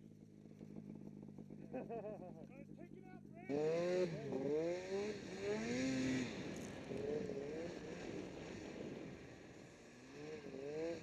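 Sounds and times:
snowmobile engine revving: 0:02.9 - 0:08.1.

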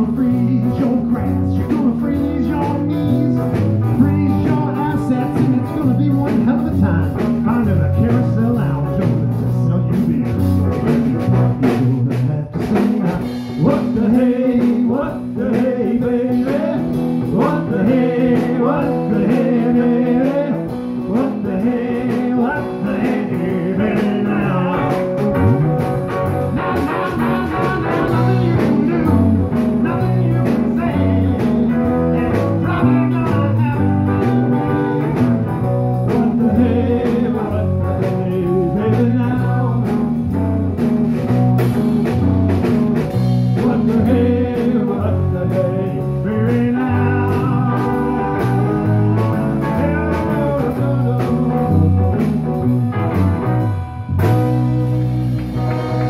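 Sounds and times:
man singing through a pa: 0:00.0 - 0:10.3, 0:11.6 - 0:25.4, 0:26.6 - 0:35.0, 0:36.0 - 0:40.0, 0:43.5 - 0:51.9
drum kit: 0:00.0 - 0:56.0
electric guitars: 0:00.0 - 0:56.0
live blues band playing: 0:00.0 - 0:56.0.

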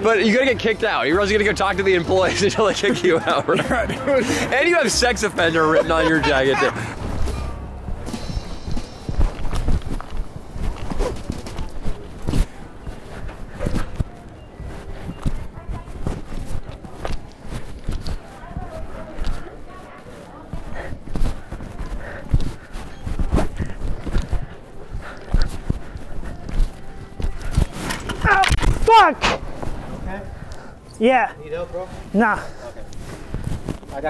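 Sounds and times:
limping footsteps: 0:00.0 - 0:30.9, 0:31.6 - 0:34.0.

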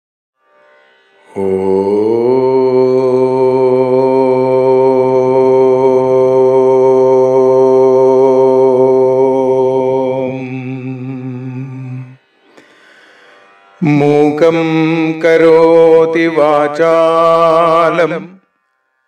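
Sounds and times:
man chanting om: 0:01.2 - 0:12.2, 0:13.8 - 0:18.4.

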